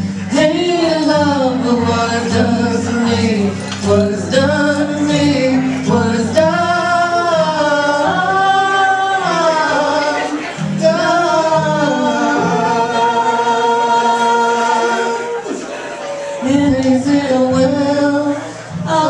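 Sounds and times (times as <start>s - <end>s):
person singing long notes: 0.0s - 15.8s, 16.4s - 19.0s
acoustic guitar: 0.0s - 19.0s.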